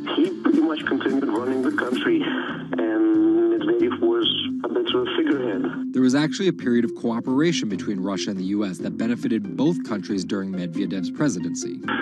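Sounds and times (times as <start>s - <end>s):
television news speech: 0.0s - 12.0s.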